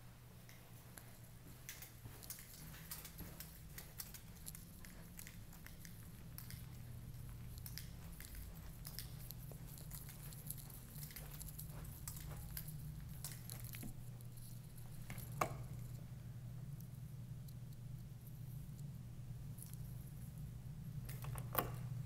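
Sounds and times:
steady low hum: 0:00.0 - 0:22.0
footsteps: 0:00.5 - 0:16.0
handling clicks and rustles: 0:00.5 - 0:16.0.

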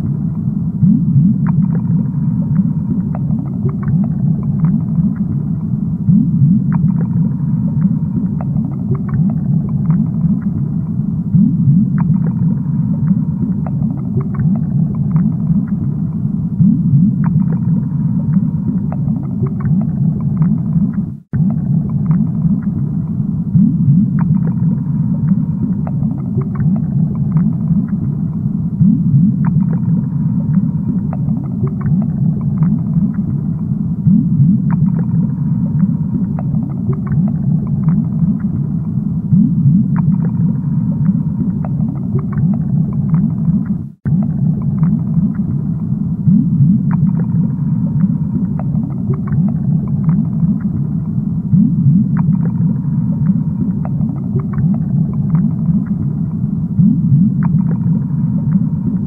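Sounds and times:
aquarium underwater rumble: 0:00.0 - 0:59.0
small bubbling blips: 0:00.8 - 0:59.0.

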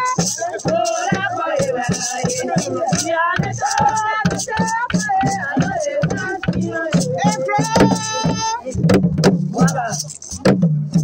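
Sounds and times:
wooden drums beaten with sticks: 0:00.0 - 0:11.0
crowd voices: 0:05.5 - 0:08.8.

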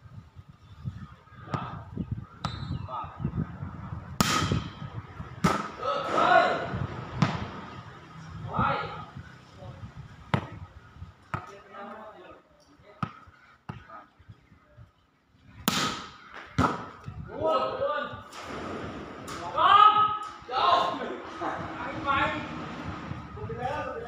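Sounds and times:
volleyball hits: 0:04.2 - 0:06.3, 0:07.2 - 0:07.7, 0:15.6 - 0:16.9
players shouting: 0:05.5 - 0:07.8.

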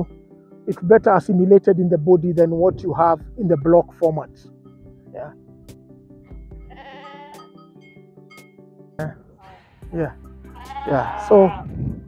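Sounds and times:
soft background music: 0:00.0 - 0:12.0
sheep bleating: 0:06.6 - 0:07.6, 0:10.5 - 0:12.0.

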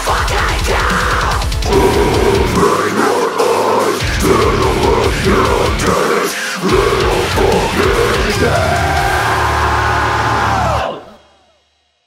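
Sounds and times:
band holding distorted chord: 0:00.0 - 0:11.4.

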